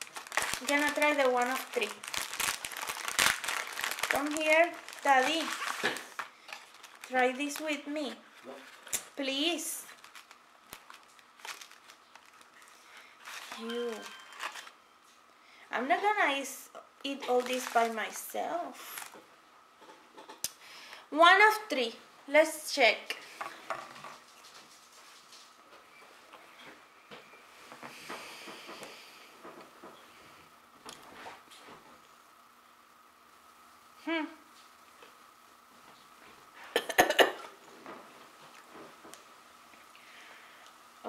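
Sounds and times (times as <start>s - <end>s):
crackles: 0.0s - 15.4s, 16.4s - 21.1s
soft breathy hiss: 15.1s - 16.8s, 17.5s - 19.4s, 20.4s - 21.3s, 22.3s - 25.6s, 26.4s - 36.9s, 39.2s - 41.0s.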